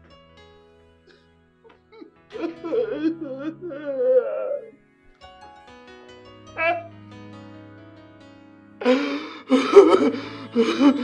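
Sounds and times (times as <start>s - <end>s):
man sobbing loudly: 2.0s - 4.7s, 8.8s - 11.0s.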